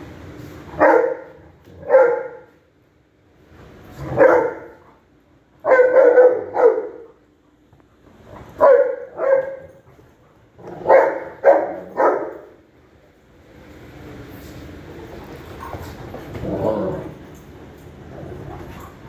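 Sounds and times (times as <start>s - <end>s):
dogs barking: 0.8s - 2.6s, 4.1s - 5.0s, 5.6s - 7.3s, 8.4s - 9.8s, 10.6s - 12.6s.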